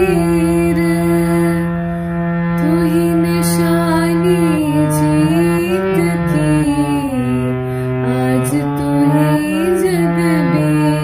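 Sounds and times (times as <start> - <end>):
harmonium playing: 0.0 - 11.0
person singing wordlessly: 8.1 - 11.0.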